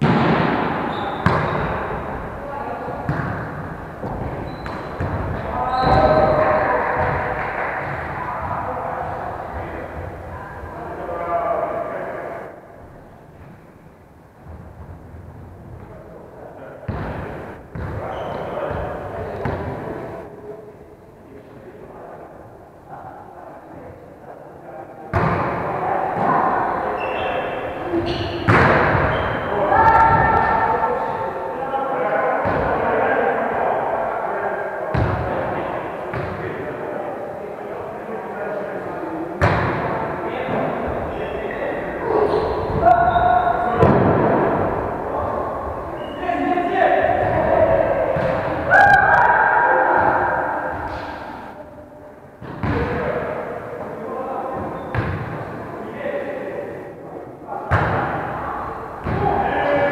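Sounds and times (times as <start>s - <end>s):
volleyball being hit: 0.0s - 1.8s, 3.1s - 6.1s, 28.4s - 29.2s
volleyball smacks echoing in gym: 0.0s - 2.3s, 2.9s - 10.2s, 16.9s - 20.1s, 25.1s - 27.3s, 27.9s - 30.8s, 34.9s - 35.4s, 39.4s - 40.8s, 42.0s - 45.3s, 47.0s - 51.4s, 52.4s - 53.4s, 54.6s - 55.6s, 57.7s - 58.3s, 59.0s - 59.8s
players calling out: 0.0s - 12.6s, 39.6s - 51.6s
players' voices: 0.0s - 59.9s.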